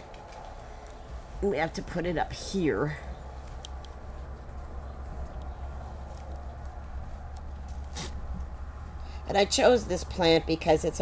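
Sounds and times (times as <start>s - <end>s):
faint rustling: 0.0s - 9.2s
low steady hum: 0.0s - 11.0s
light ticks: 3.4s - 4.6s.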